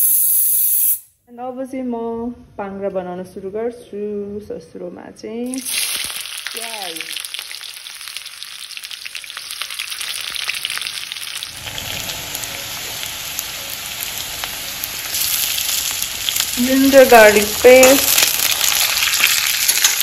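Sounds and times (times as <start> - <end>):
onions sizzling in hot oil: 5.5 - 20.0.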